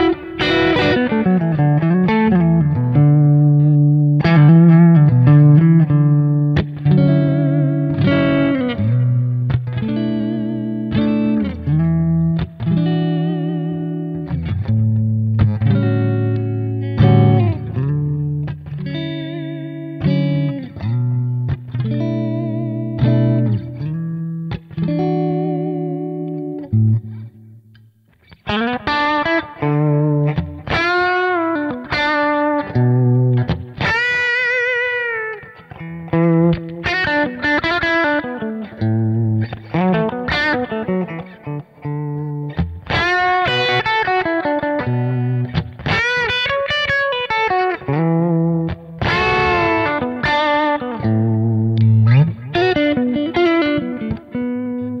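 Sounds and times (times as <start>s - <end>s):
electric guitar playing: 0.0s - 55.0s.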